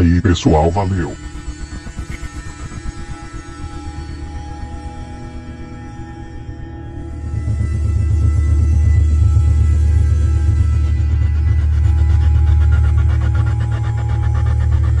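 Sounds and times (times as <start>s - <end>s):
background music with low drone: 0.0s - 15.0s
fast pulsing high layer: 7.5s - 15.0s.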